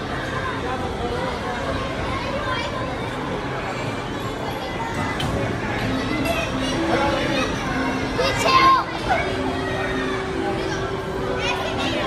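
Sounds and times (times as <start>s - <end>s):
children's voices and calls: 0.0s - 12.0s.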